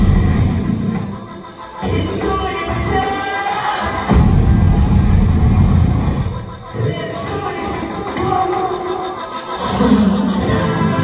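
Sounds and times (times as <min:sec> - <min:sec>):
crowd noise: 0:00.0 - 0:11.0
live electronic rock band: 0:00.0 - 0:11.0.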